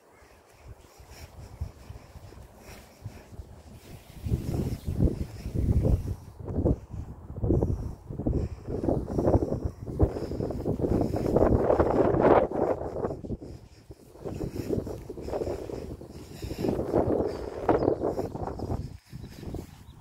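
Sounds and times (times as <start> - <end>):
wind buffeting microphone: 0.5 - 20.0.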